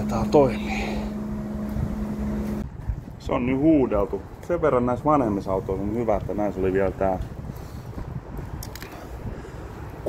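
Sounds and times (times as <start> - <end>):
pressure washer running: 0.0 - 2.6.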